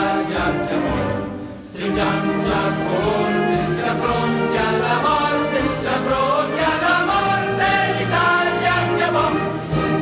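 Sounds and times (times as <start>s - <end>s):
choir singing held notes: 0.0s - 10.0s
orchestral backing: 0.0s - 10.0s.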